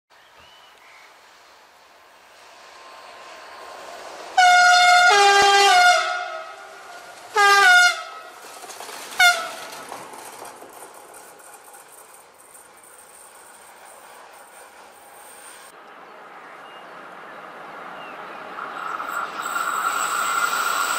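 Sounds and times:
rail rumble: 1.1 - 20.9
two-tone locomotive horn: 4.4 - 8.4, 9.2 - 9.7.

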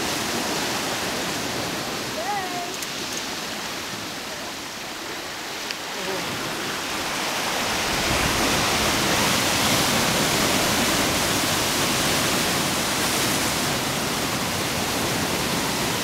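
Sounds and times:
rough sea surging through rocks: 0.0 - 16.0.

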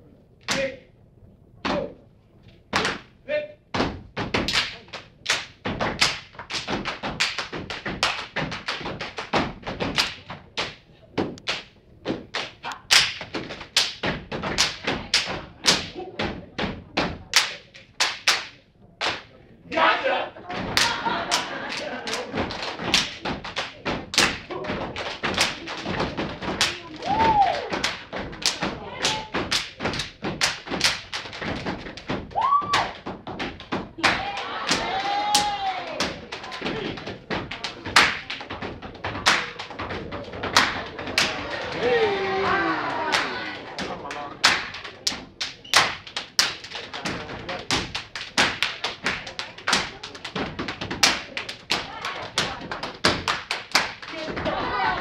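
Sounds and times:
hand claps and body slaps: 2.7 - 3.1, 3.8 - 19.4, 20.5 - 55.0
rhythmic foot stomps: 2.7 - 18.4, 20.4 - 55.0
crowd voices: 18.7 - 30.2, 33.9 - 55.0.

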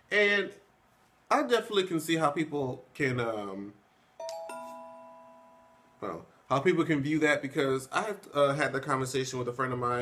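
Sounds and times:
two-note chime: 4.2 - 6.0.

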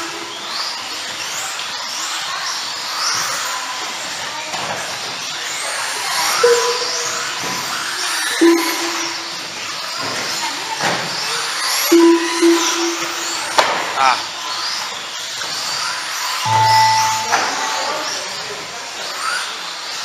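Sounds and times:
short steady tones: 11.9 - 13.5, 16.5 - 18.2.

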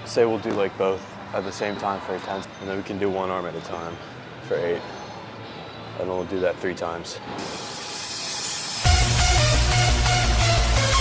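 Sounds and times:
electronic dance music: 7.5 - 11.0.

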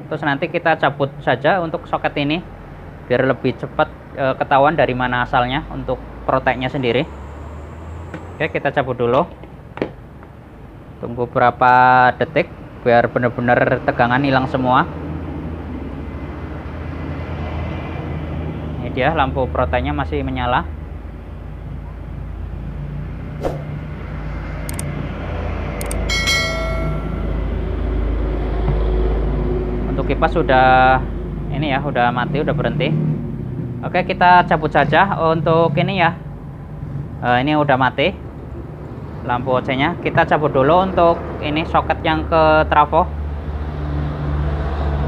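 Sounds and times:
sharp click: 23.4 - 23.7, 24.7 - 24.9, 25.8 - 26.1
mouse clicks: 24.7 - 24.9
bell chime: 25.8 - 27.9.

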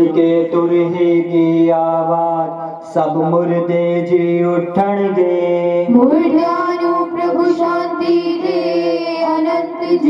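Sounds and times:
steady drone: 5.2 - 10.0.

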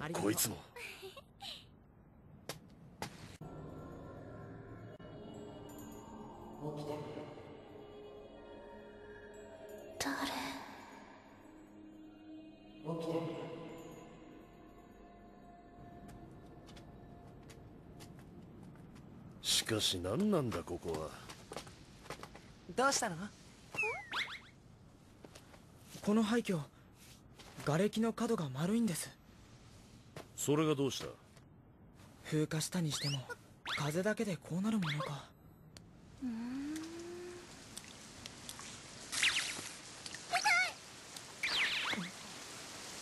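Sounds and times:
cartoon squeak and chirps: 23.8 - 24.5, 32.9 - 33.9, 34.7 - 35.2, 41.4 - 42.1
squeaky cartoon creature voice: 34.7 - 35.3.

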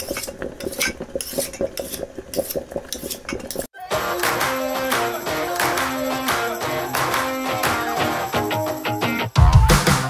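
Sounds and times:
music: 3.8 - 10.0.

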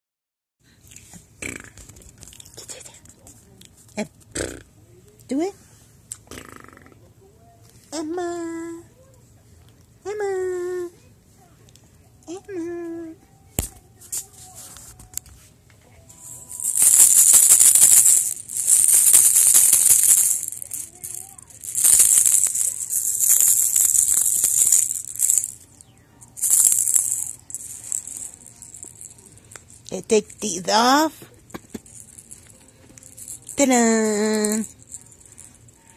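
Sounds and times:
faint background noise: 0.6 - 35.9
infant making throaty burp sound: 1.4 - 1.8, 4.3 - 4.7, 6.2 - 7.0
plastic baby rattle shaking: 16.3 - 25.7, 26.3 - 30.9, 31.5 - 35.9.

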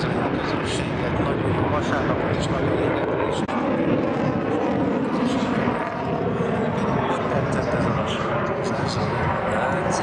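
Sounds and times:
fighter jet flying overhead: 0.0 - 10.0.

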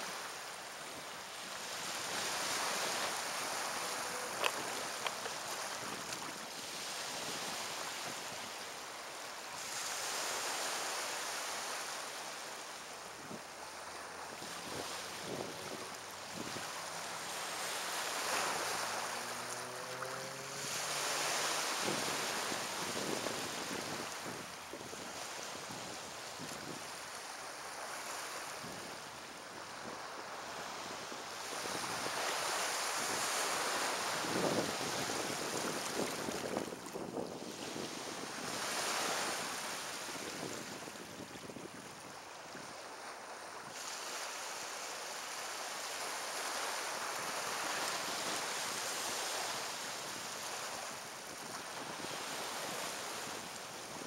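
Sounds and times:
small waves breaking on shore: 0.0 - 54.0
wind rumbling on microphone: 1.4 - 8.6, 13.2 - 27.4, 28.4 - 42.8.

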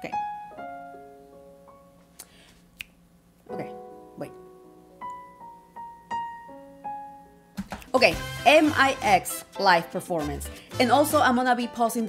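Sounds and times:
piano chords: 0.0 - 2.0, 3.5 - 12.0.

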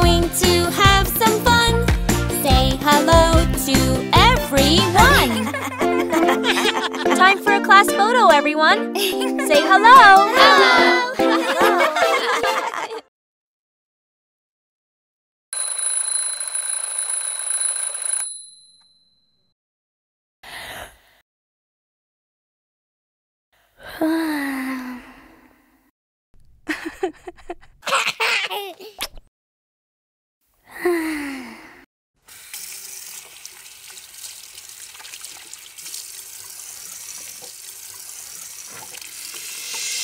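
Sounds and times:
alarm clock bells ringing: 15.6 - 18.8
water running into sink: 32.3 - 40.0.

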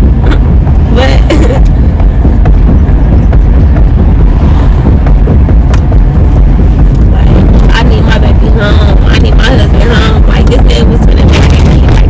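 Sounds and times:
road and engine rumble: 0.0 - 12.0
woman speaking: 0.9 - 1.6, 7.1 - 12.0.

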